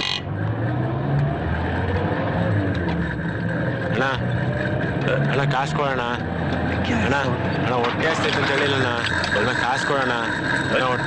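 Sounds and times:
vehicle drone: 0:00.0 - 0:11.0
people speaking: 0:03.9 - 0:04.3, 0:05.0 - 0:11.0.

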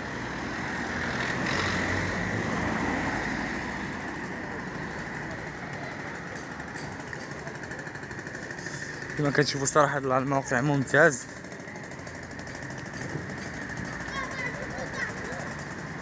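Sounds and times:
passing vehicle engine and tyres: 0:00.0 - 0:16.0
town street noise: 0:00.0 - 0:16.0.

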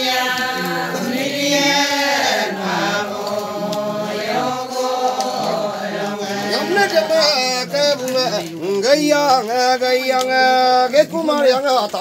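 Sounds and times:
women chanting a dance song: 0:00.0 - 0:07.5.

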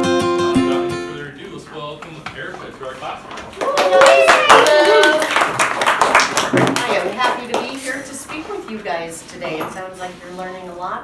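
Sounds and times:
children clapping and cheering: 0:03.5 - 0:07.7
children whooping: 0:03.6 - 0:05.4.

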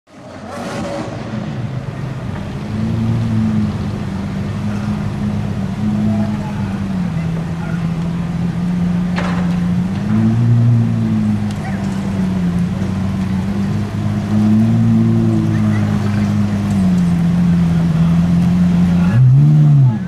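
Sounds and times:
sports car engine at low revs: 0:00.1 - 0:20.0.

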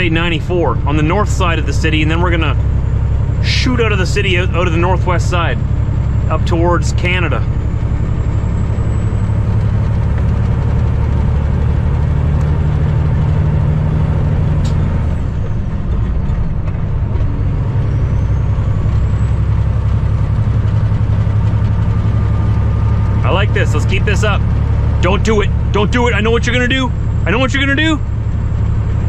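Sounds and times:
diesel engine drone in cab: 0:00.0 - 0:29.0
road noise: 0:00.0 - 0:29.0.

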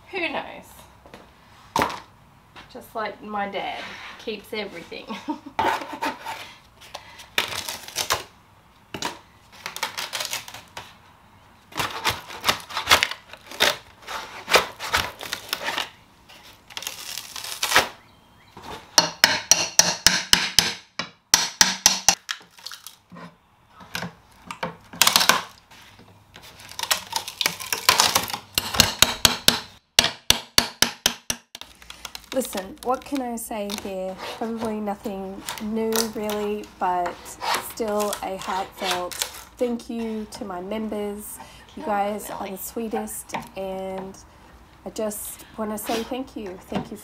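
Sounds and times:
metal scraping on wood: 0:03.5 - 0:04.9, 0:31.6 - 0:40.5
hammer striking pry bar: 0:19.0 - 0:22.2, 0:28.6 - 0:31.6.

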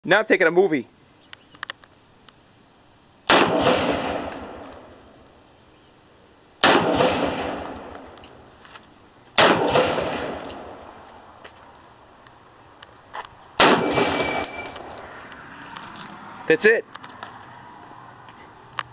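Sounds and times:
rifle shots echoing: 0:03.3 - 0:05.0, 0:06.6 - 0:08.1, 0:09.4 - 0:11.0, 0:13.6 - 0:14.5.

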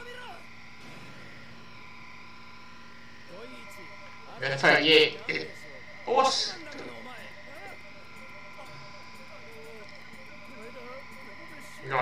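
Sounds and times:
faint wavering voices: 0:01.6 - 0:12.0.

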